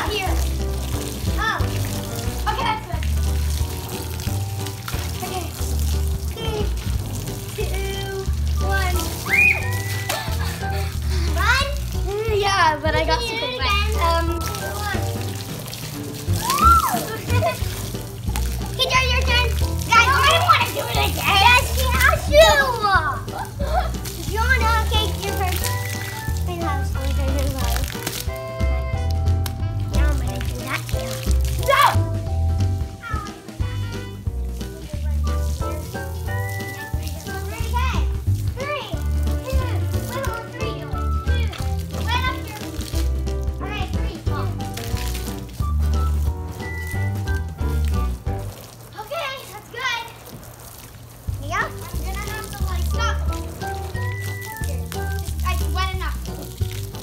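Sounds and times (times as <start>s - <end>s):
children's voices calling: 0.0s - 3.6s, 4.6s - 29.0s, 29.8s - 32.2s, 32.9s - 45.2s, 48.8s - 50.8s, 51.4s - 56.4s.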